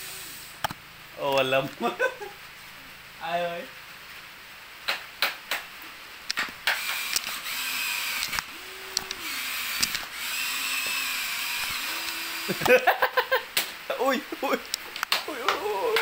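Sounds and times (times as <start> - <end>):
small electric motors whirring: 0.0 - 0.8, 6.3 - 12.8
sharp plastic clicks: 6.3 - 10.1.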